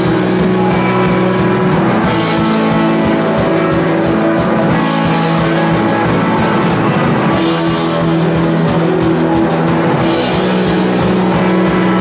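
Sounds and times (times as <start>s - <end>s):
distorted electric guitars: 0.0s - 12.0s
drum kit: 0.0s - 12.0s.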